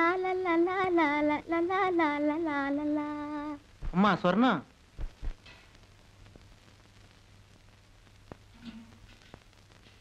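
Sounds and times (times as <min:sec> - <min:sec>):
woman singing high melody: 0:00.0 - 0:03.6.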